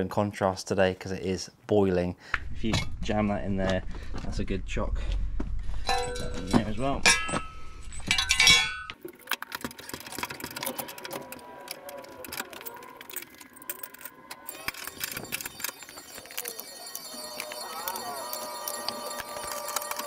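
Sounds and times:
metal tools clinking: 5.9 - 20.0.

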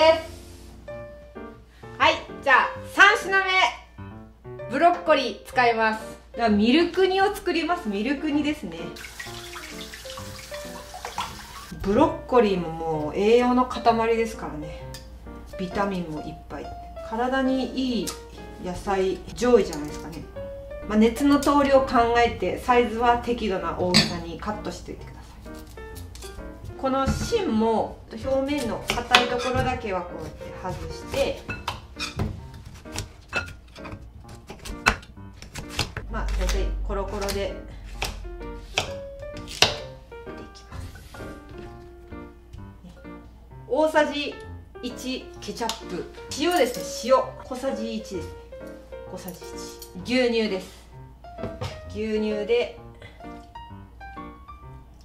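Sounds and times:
low hum: 36.0 - 38.6
knife chopping on cutting board: 37.9 - 39.9.

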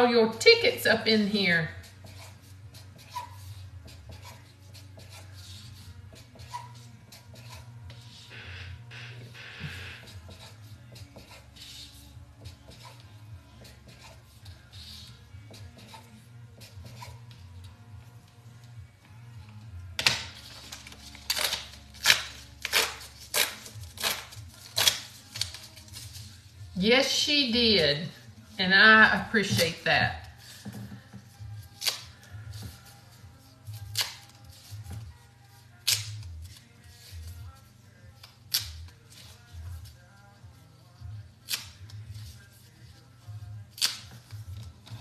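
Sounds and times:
marker scratching on paper: 1.8 - 8.4, 9.7 - 17.4
paper tickets ripping: 20.0 - 26.4, 31.6 - 32.5.

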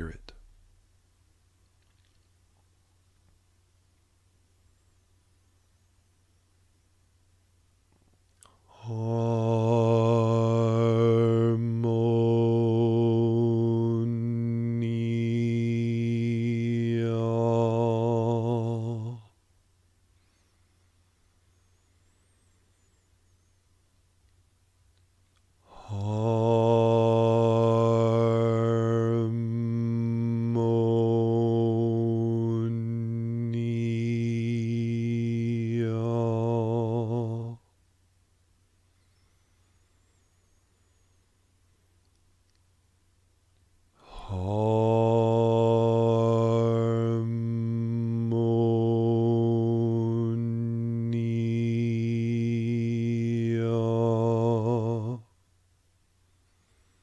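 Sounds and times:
man chanting a long low tone: 0.0 - 0.6, 8.7 - 19.3, 25.7 - 37.6, 44.0 - 55.3.

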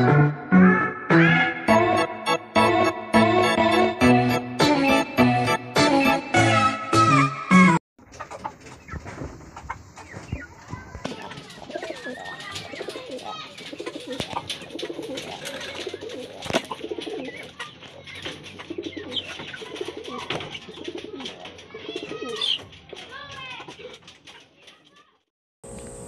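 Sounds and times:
pigeons cooing: 11.5 - 22.7.

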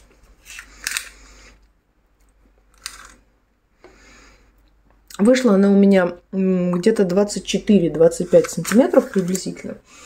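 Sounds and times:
tape measure clicks and rustles: 8.2 - 9.7.

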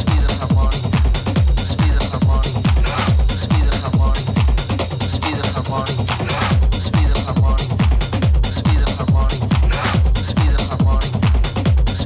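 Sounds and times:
hi-hats and percussion: 0.0 - 12.0
techno kick drum: 0.0 - 12.0.

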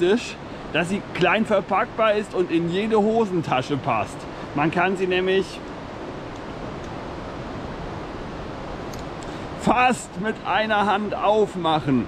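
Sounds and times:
steady rushing background noise: 0.0 - 12.0.

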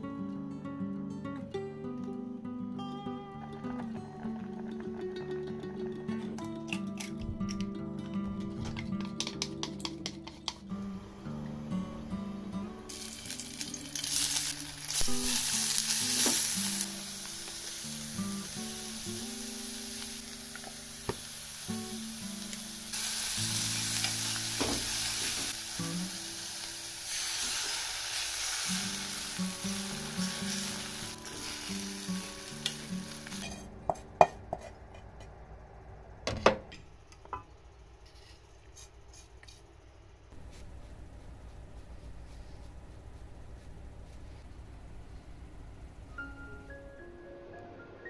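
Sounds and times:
food sizzling in a frying pan: 12.9 - 33.6.

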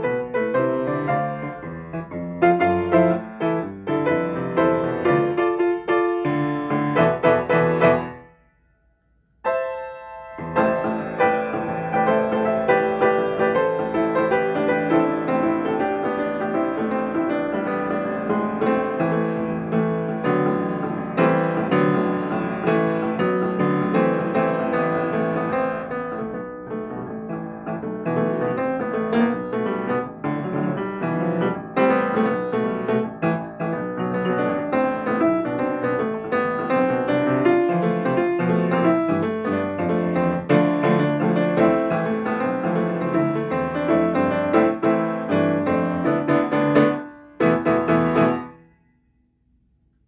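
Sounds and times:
grand piano playing: 0.0 - 49.1.

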